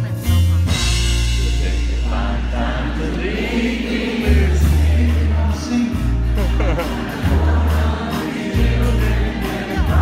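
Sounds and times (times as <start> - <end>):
country band playing: 0.0 - 10.0
steady bass line: 0.0 - 10.0
people singing: 1.7 - 10.0.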